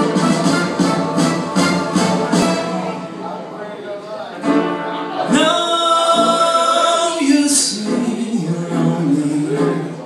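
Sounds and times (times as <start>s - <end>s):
backing track: 0.0s - 10.0s
man singing: 5.3s - 10.0s.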